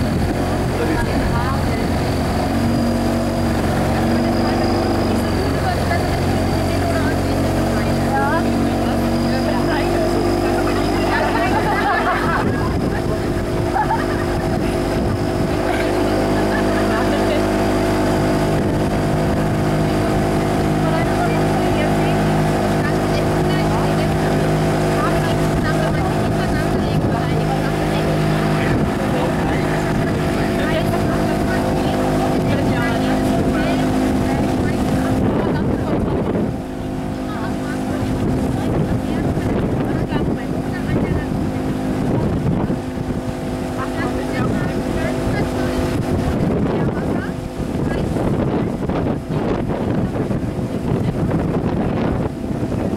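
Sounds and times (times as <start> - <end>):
motorboat engine running: 0.0 - 52.9
water rushing along hull: 0.0 - 52.9
wind on microphone: 0.0 - 52.9.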